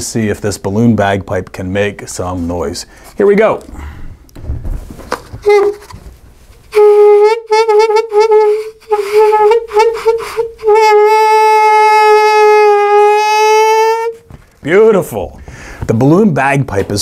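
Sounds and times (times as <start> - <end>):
balloon bagpipe note: 5.4 - 6.0, 6.6 - 14.4.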